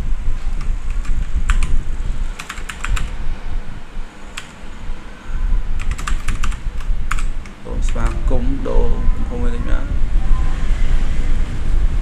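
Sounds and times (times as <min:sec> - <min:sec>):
low steady rumble: 0:00.0 - 0:12.0
computer keyboard typing: 0:00.6 - 0:01.8, 0:02.4 - 0:03.2, 0:04.3 - 0:04.5, 0:05.8 - 0:08.2.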